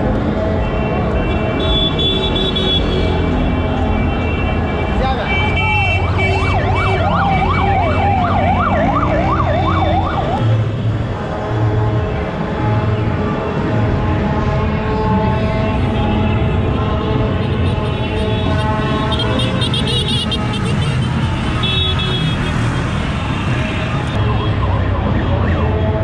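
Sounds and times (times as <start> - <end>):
street and traffic noise: 0.0 - 26.0
vehicle siren yelping: 5.8 - 10.4, 24.2 - 26.0.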